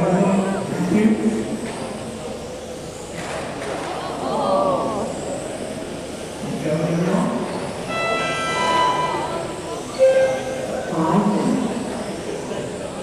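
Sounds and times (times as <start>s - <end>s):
steady background noise: 0.0s - 13.0s
indistinct voices talking: 7.8s - 13.0s.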